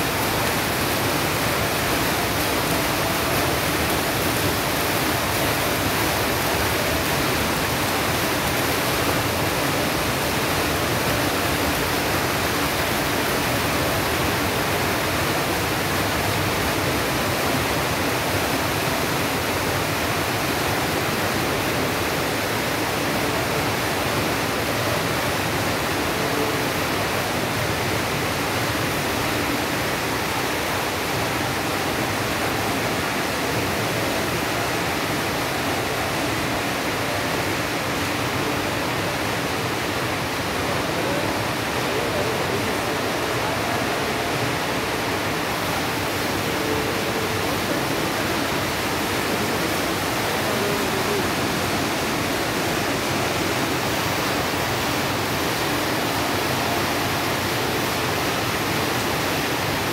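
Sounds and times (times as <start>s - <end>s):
flowing water rushing: 0.0s - 59.9s.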